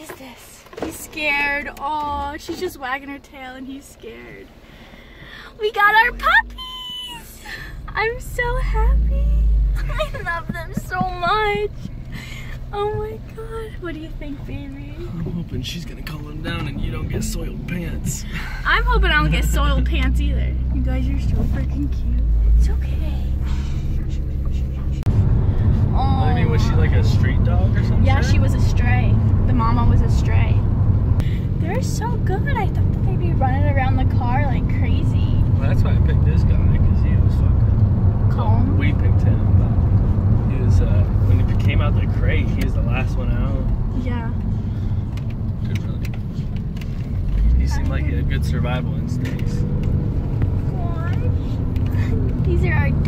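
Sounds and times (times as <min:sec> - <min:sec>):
car road and engine rumble: 0:00.0 - 0:53.0.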